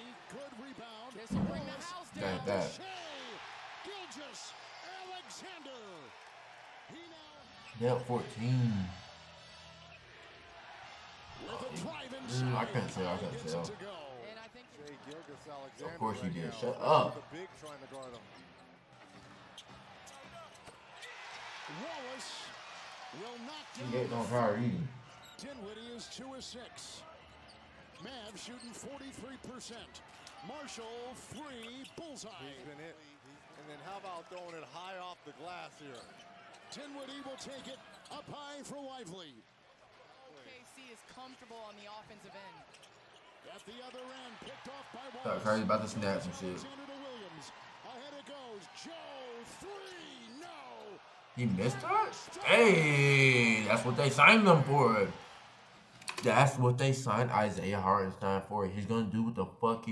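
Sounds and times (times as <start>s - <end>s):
tv commentator speaking: 0.0s - 3.3s, 6.9s - 9.0s, 11.4s - 18.2s, 23.4s - 27.0s, 44.1s - 47.5s, 51.4s - 55.2s, 56.1s - 59.9s
arena crowd noise: 0.0s - 59.9s.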